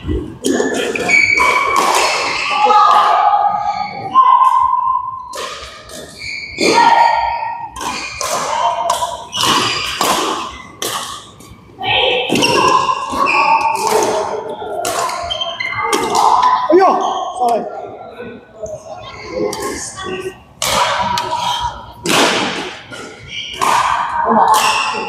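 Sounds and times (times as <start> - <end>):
voices in a hall: 0.0 - 25.0
racket hitting shuttlecock: 0.4 - 3.2, 7.7 - 11.4, 12.3 - 16.5, 20.6 - 21.3, 22.0 - 25.0.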